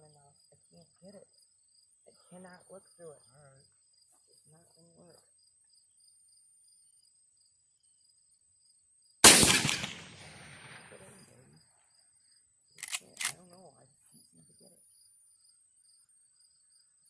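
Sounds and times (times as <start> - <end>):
crickets chirping: 0.0 - 17.0
shotgun blast echoing: 9.2 - 11.3.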